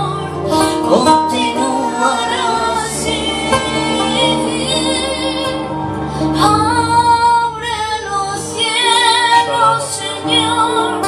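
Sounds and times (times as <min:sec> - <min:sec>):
strummed acoustic guitar: 0:00.0 - 0:07.8
man singing in high voice: 0:00.5 - 0:04.9.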